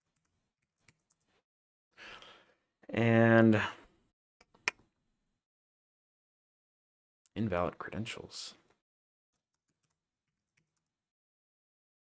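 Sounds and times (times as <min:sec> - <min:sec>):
faint keyboard typing: 0:09.5 - 0:10.9.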